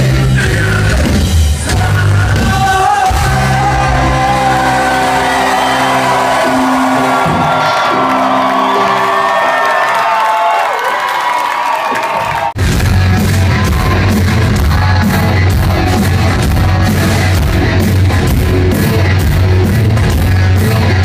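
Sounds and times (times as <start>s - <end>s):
loud live rock band: 0.0s - 10.0s, 11.8s - 21.0s
crowd whooping and cheering: 3.1s - 17.9s.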